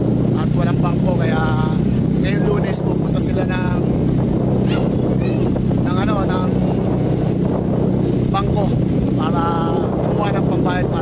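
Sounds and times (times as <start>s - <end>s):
small motorcycle engine running: 0.0s - 11.0s
voice: 0.4s - 3.9s, 4.6s - 6.6s, 8.3s - 11.0s.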